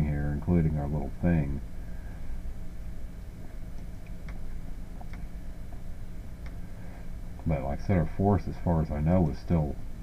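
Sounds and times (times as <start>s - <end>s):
low room hum: 0.0s - 10.0s
faint clicks: 5.0s - 5.8s.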